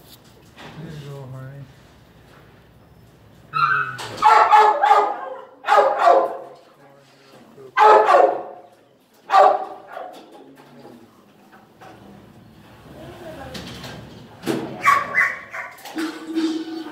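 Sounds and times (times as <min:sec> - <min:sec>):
dog barking loudly: 0:03.5 - 0:06.6, 0:07.7 - 0:10.2, 0:14.8 - 0:15.9.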